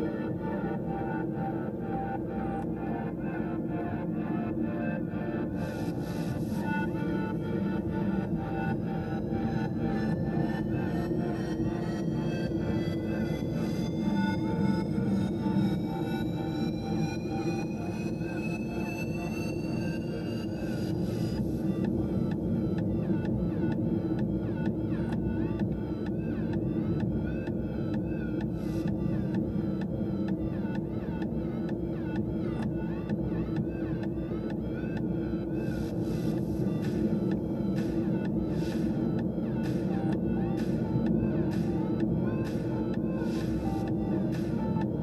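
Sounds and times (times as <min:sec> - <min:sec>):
car engine drone: 0:00.0 - 0:45.0.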